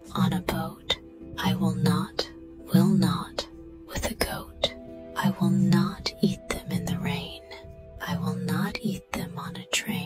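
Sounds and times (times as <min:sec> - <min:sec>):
soft background music: 0:00.0 - 0:10.0
person whispering: 0:00.1 - 0:10.0.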